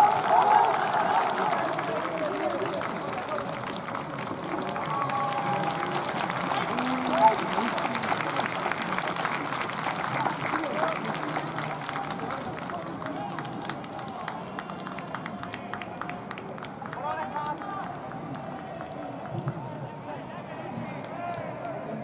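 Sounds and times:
sharp claps: 0:00.0 - 0:19.7
crowd chatter: 0:00.0 - 0:22.0.

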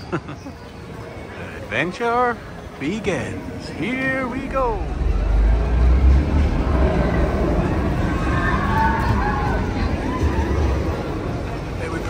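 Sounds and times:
faint crowd chatter: 0:00.0 - 0:12.0
low rumble: 0:03.7 - 0:12.0.

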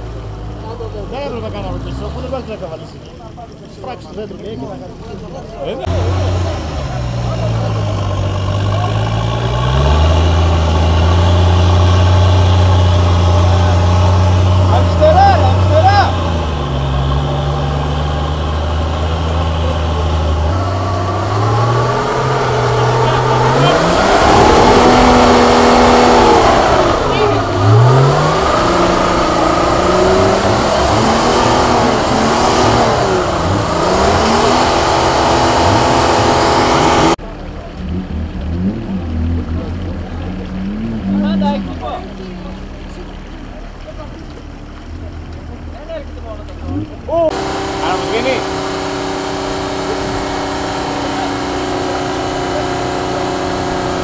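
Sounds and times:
diesel engine labouring: 0:00.0 - 0:54.0
engine revving: 0:05.6 - 0:44.4, 0:46.5 - 0:54.0.

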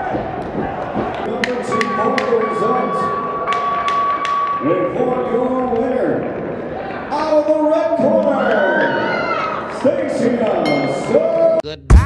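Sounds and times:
crowd hubbub: 0:00.0 - 0:07.6.

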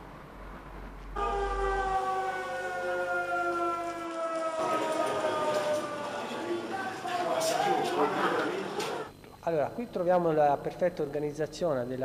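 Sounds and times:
air-raid siren sliding down: 0:01.2 - 0:07.8.

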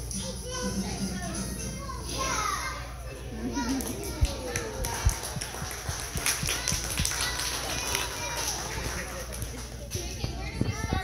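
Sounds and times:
faint music: 0:00.0 - 0:11.0
young children chattering: 0:00.0 - 0:11.0.

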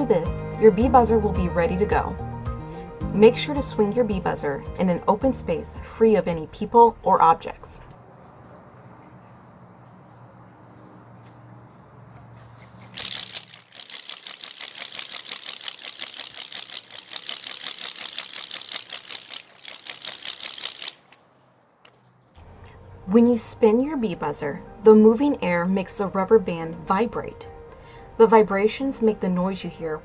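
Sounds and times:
rubber band buzzing: 0:12.9 - 0:21.2.

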